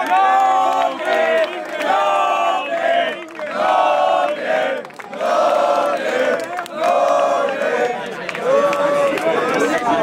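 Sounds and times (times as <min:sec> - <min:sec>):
crowd chanting in unison: 0:00.0 - 0:10.0.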